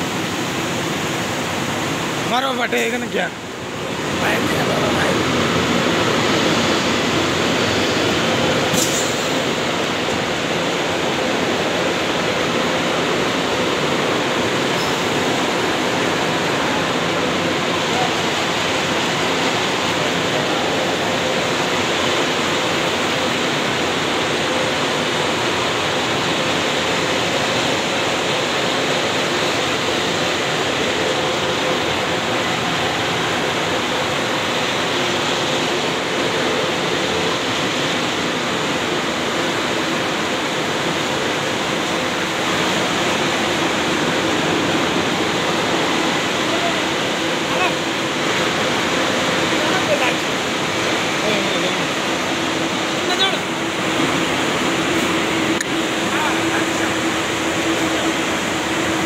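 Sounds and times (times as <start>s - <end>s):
mill machinery rushing hiss: 0.0s - 59.0s.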